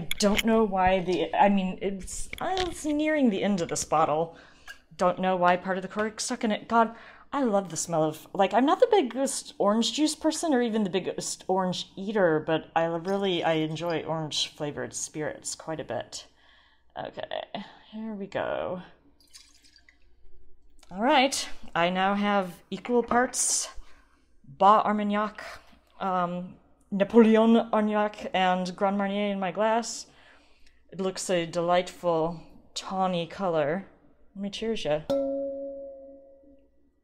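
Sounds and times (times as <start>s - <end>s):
liquor pouring into a glass: 19.2s - 20.0s
wine glass clink: 35.1s - 36.6s.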